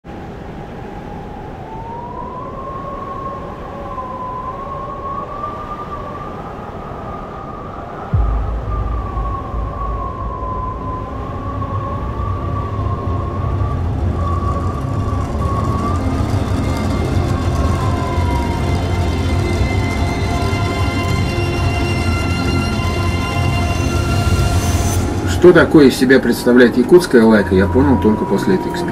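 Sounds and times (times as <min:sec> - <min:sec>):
wavering high tone: 0:01.5 - 0:28.9
low drone: 0:06.2 - 0:28.9
deep bass: 0:08.2 - 0:26.0.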